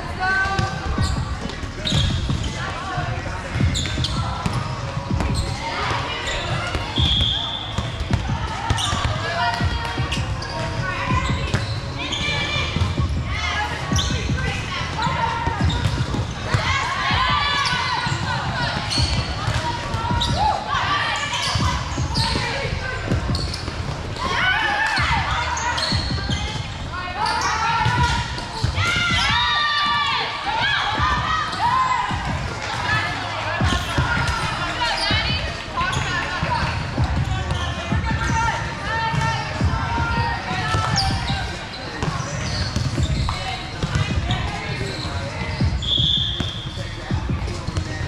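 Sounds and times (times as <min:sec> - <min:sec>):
feet hitting court: 0:40.6 - 0:46.5.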